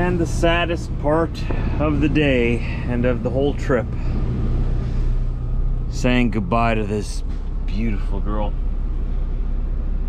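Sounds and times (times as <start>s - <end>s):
truck diesel engine idling: 0.0s - 10.0s.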